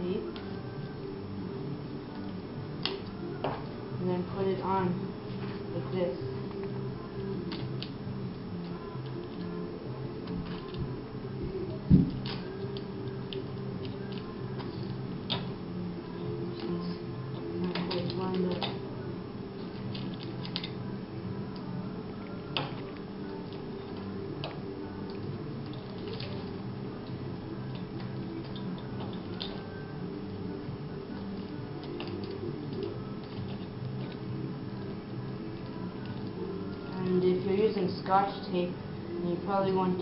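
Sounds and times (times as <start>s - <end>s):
steady low hum: 0.0s - 40.0s
tape clicks and rustles: 22.6s - 29.6s.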